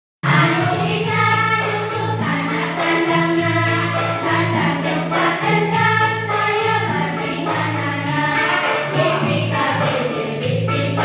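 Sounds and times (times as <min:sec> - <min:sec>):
group of voices singing: 0:00.2 - 0:11.0
musical accompaniment: 0:00.2 - 0:11.0.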